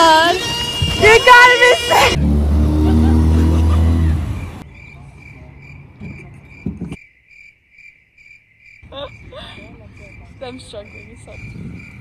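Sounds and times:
cricket chirping: 4.6s - 12.0s.

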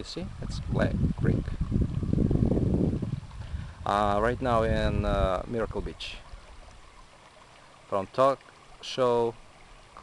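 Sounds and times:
wind buffeting microphone: 0.0s - 7.0s.

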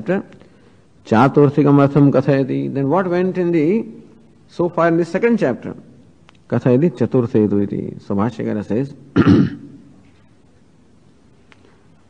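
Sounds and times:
man clearing his throat: 9.2s - 9.9s.

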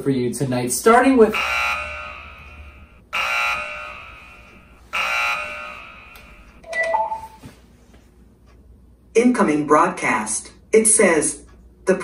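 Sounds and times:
electric alarm buzzer: 1.2s - 6.6s.

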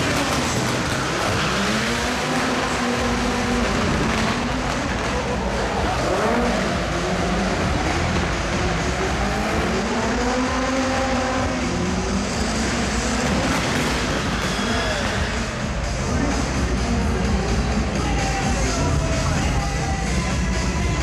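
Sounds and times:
constant noisy din: 0.0s - 21.0s
racing car engine revving: 0.0s - 21.0s.

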